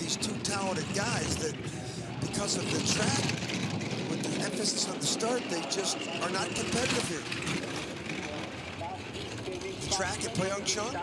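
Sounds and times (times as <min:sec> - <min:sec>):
voices: 0:00.0 - 0:11.0
sled runners rumbling on ice: 0:06.2 - 0:11.0.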